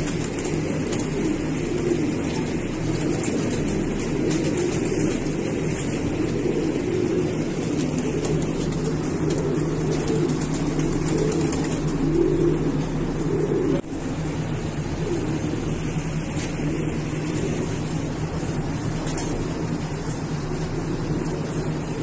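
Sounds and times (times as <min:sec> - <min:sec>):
constant low hum: 0:00.0 - 0:22.0
pigeons cooing: 0:00.0 - 0:22.0.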